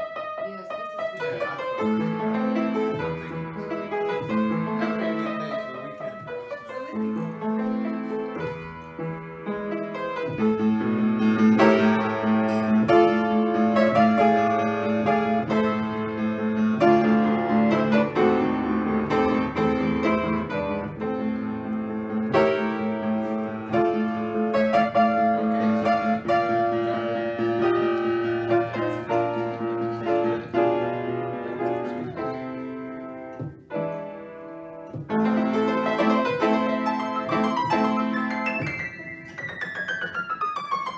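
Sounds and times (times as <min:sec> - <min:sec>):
upright piano playing: 0:00.0 - 0:40.9.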